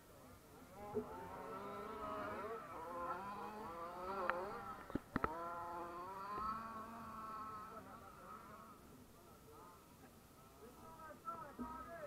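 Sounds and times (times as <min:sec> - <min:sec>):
rc car motor buzzing: 0:00.6 - 0:09.8.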